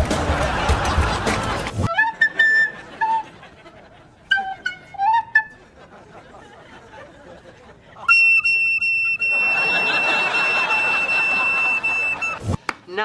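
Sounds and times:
studio audience laughter: 0.0s - 4.3s, 5.6s - 8.1s, 9.2s - 12.4s.

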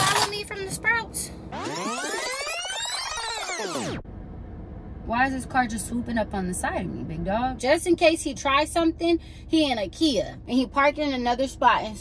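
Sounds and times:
synthesized pitch sweep: 1.4s - 4.0s
low steady hum: 4.0s - 12.0s.

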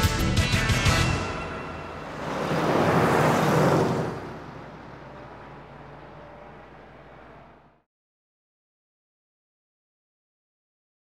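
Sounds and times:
car passing: 0.5s - 7.8s.

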